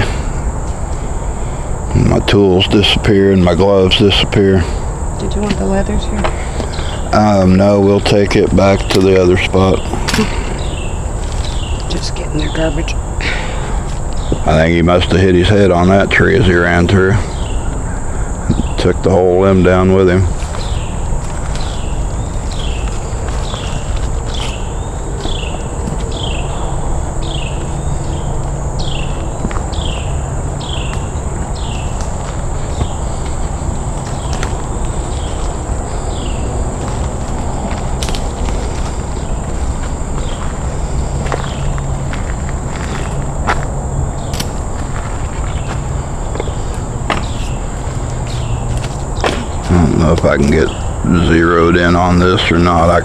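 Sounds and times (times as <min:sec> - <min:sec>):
high insect drone: 0:00.0 - 0:53.0
low rumbling handling noise: 0:13.8 - 0:53.0
footsteps on forest floor: 0:20.3 - 0:26.5, 0:30.8 - 0:50.7.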